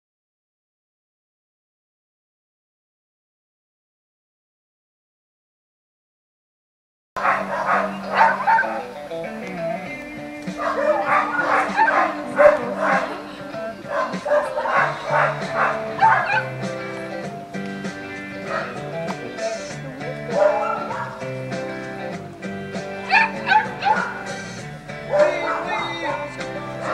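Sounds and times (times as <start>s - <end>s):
dog barking: 7.2s - 8.9s, 10.6s - 13.2s, 13.8s - 16.6s, 18.4s - 18.8s, 20.3s - 21.2s, 23.0s - 24.4s, 25.1s - 26.2s
music: 7.2s - 26.9s.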